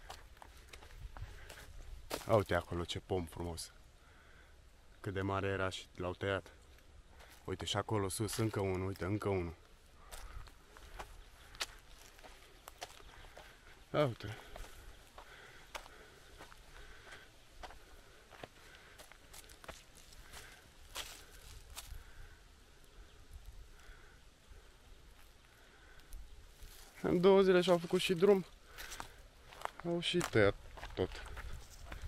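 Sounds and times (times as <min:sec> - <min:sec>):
footsteps on dirt track: 0:00.0 - 0:02.8, 0:07.1 - 0:22.2, 0:26.1 - 0:32.0.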